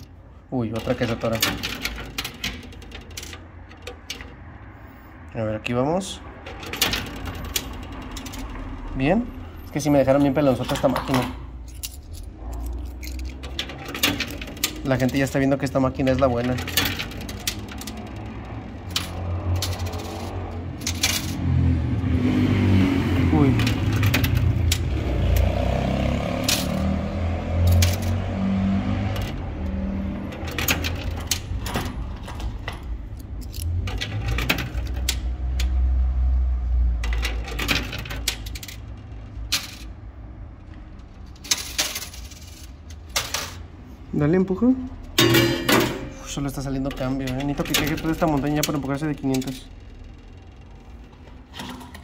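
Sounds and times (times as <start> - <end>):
coins clinking and dropping: 9.6 - 21.5, 25.9 - 28.2, 37.0 - 40.0, 41.3 - 43.6.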